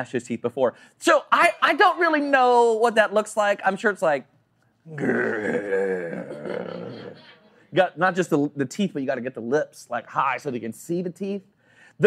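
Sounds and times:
man growling: 4.9s - 7.3s.

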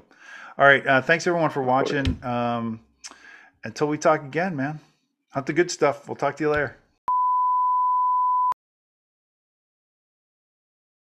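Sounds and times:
electronic beep: 7.1s - 8.6s.

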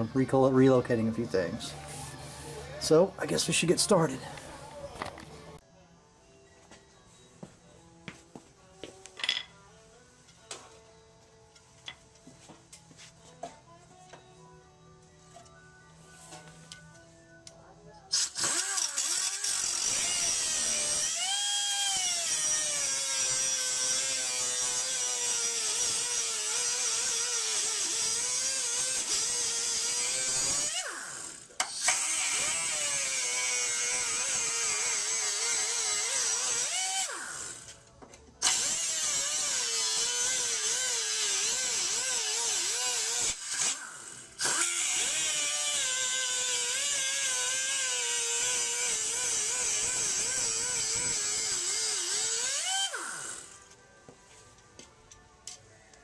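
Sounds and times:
electric grinder cutting metal: 18.1s - 37.8s, 38.4s - 53.8s.

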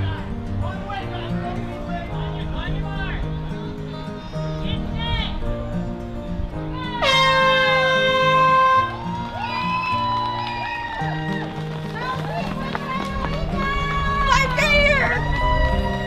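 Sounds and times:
air horn blast: 6.8s - 9.1s.

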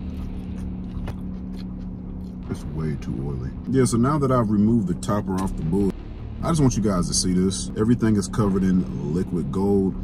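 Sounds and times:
food being chewed: 0.0s - 2.4s
car running hum: 0.0s - 10.0s.

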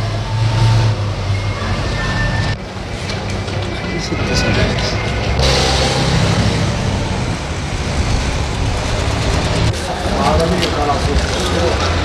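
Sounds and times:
vehicle engines rumbling: 0.0s - 12.0s.

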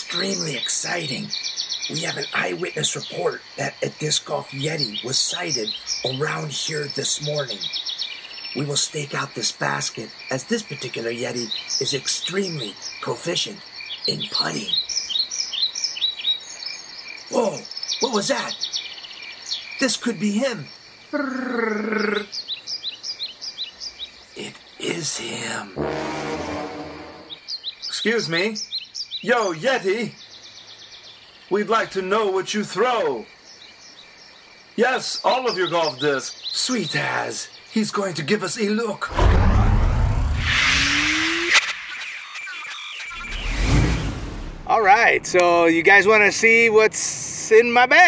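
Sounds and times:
sharp hit: 25.8s - 27.4s, 39.1s - 41.8s, 43.3s - 44.8s
shimmering tail: 25.8s - 27.4s
deep rushing whoosh: 39.1s - 41.4s, 43.4s - 44.8s
short high bird chirps: 40.4s - 44.5s.

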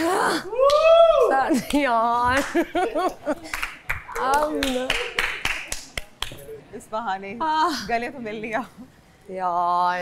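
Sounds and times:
scattered handclaps: 3.5s - 6.4s.

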